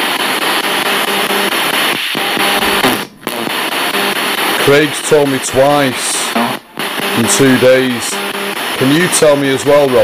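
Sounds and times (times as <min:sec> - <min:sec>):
radio static sweeping stations: 0:00.0 - 0:10.0
snatches of broadcast music: 0:00.0 - 0:10.0.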